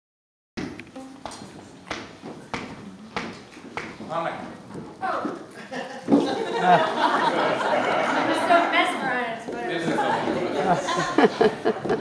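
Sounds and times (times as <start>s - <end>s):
sharp knocks in steady beat: 0.6s - 4.2s.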